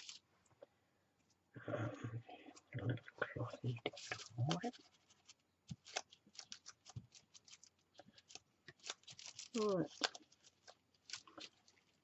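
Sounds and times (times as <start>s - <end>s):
light clicks and crinkles: 0.0s - 1.4s, 2.3s - 12.0s.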